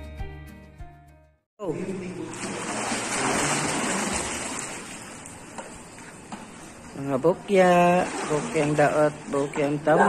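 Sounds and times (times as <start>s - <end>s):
swimmers splashing in pool: 2.2s - 6.8s, 7.6s - 9.7s.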